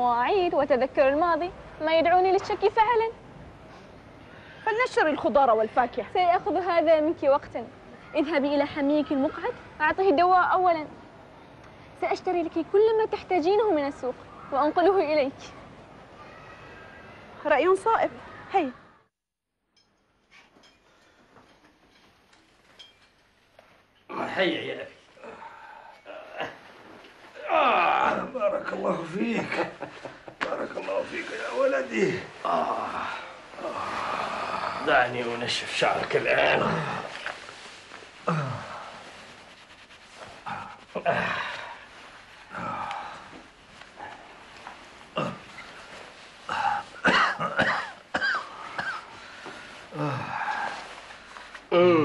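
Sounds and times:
man coughing and clearing throat: 0:47.0 - 0:49.1.

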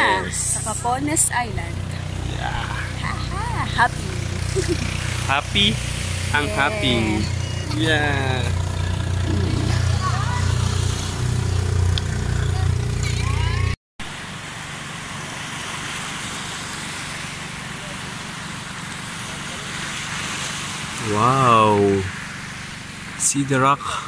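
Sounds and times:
engine idling: 0:00.0 - 0:13.8.

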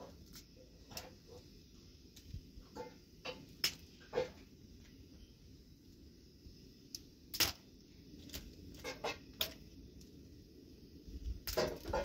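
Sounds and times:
dry twigs snapping: 0:06.9 - 0:10.1.

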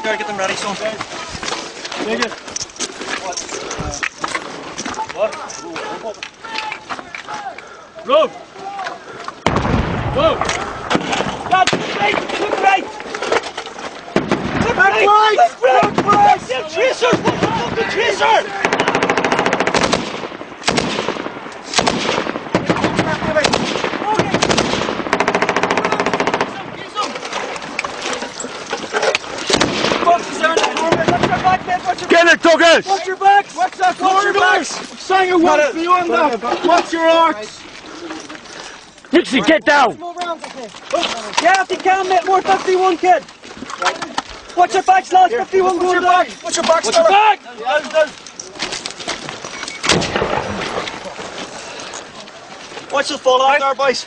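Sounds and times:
sharp cracks: 0:08.8 - 0:15.1, 0:15.7 - 0:28.1, 0:28.8 - 0:32.8, 0:48.0 - 0:51.4
men shouting: 0:14.6 - 0:19.2, 0:30.0 - 0:37.4
machine-gun fire bursts: 0:18.6 - 0:26.6.

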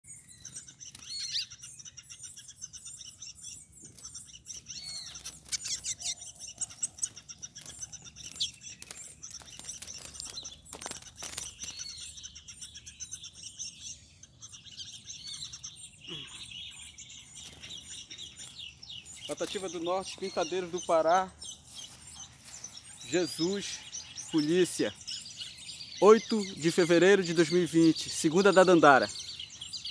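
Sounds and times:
songbird twittering: 0:00.0 - 0:29.9
wings flapping against cage bars: 0:03.8 - 0:06.0, 0:06.6 - 0:11.8.

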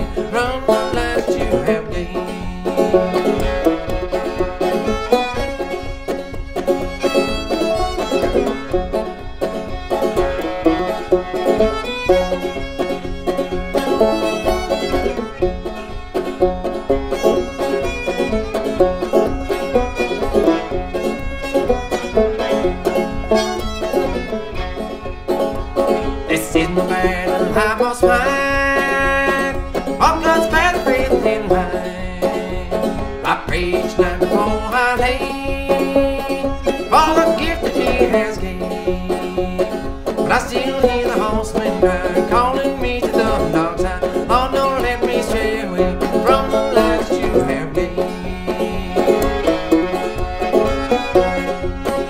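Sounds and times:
banjo and fiddle playing: 0:00.0 - 0:52.0.

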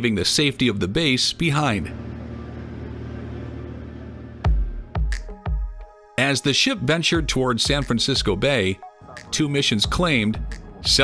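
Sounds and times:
ship engine rumble and hum: 0:01.8 - 0:04.9.

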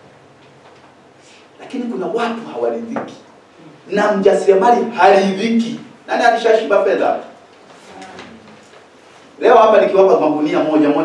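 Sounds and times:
man's amplified speech: 0:01.6 - 0:03.3, 0:03.9 - 0:08.4, 0:09.4 - 0:11.0
faint murmur: 0:03.5 - 0:04.0, 0:07.7 - 0:08.9.

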